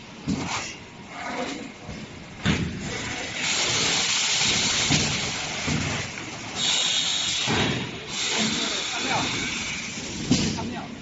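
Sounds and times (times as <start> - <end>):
vacuum forming machine hissing: 2.9 - 11.0.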